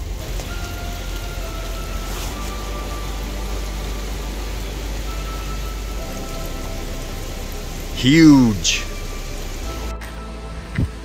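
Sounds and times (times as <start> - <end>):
faint background music: 0.0 - 11.0
waterfall splashing: 0.0 - 11.0.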